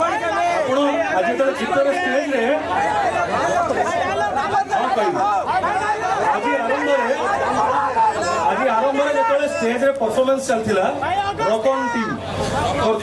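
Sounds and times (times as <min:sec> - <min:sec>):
voices talking over one another: 0:00.0 - 0:13.0.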